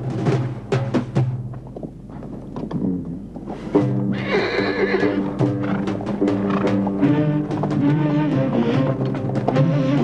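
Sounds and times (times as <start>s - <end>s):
horse whinnying: 4.1s - 8.8s.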